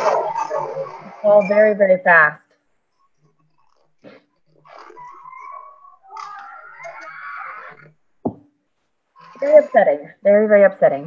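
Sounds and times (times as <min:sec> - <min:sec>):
wavering drawn-out cries: 0:00.0 - 0:01.8, 0:04.4 - 0:08.0
distant crowd screaming and shouting: 0:04.9 - 0:08.0.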